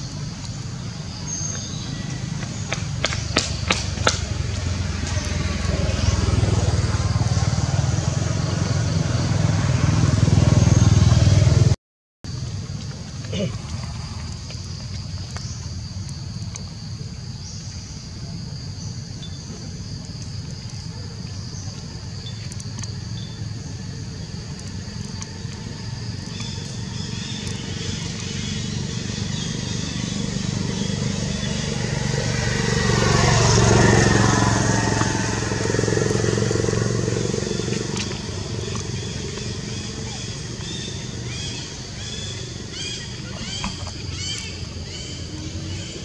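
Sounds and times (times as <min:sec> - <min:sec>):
motor vehicle passing: 0:00.0 - 0:11.8, 0:20.9 - 0:46.0.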